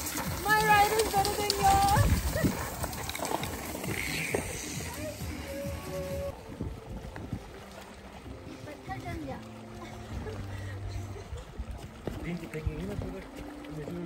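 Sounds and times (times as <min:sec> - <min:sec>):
voices calling out: 0:00.0 - 0:06.4
background music: 0:00.0 - 0:14.0.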